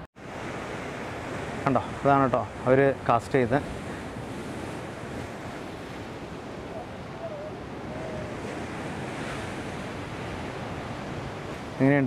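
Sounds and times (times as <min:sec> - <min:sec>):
sea surf washing against rocks: 0:00.2 - 0:12.0
wind buffeting microphone: 0:00.3 - 0:12.0.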